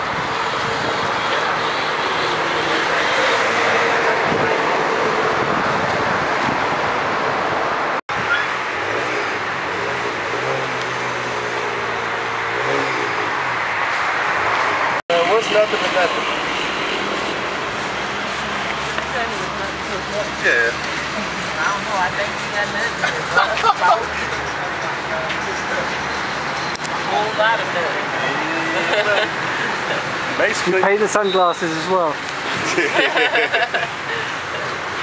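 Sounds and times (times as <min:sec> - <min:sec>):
street traffic: 0:00.0 - 0:35.0
voices talking: 0:15.1 - 0:34.9.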